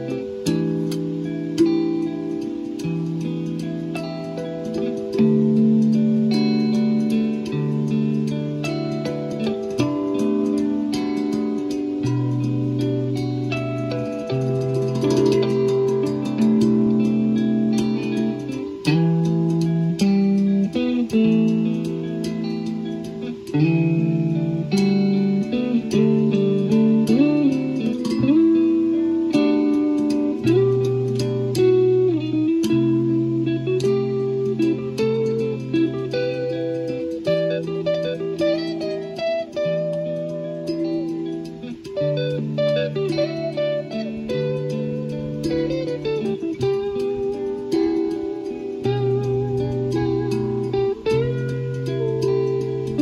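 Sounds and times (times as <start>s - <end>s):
guitar playing: 0.0s - 53.0s.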